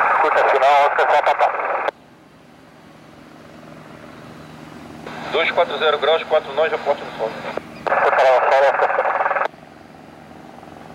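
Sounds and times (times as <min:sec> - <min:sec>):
distant helicopter rotor and turbine: 0:00.0 - 0:10.9.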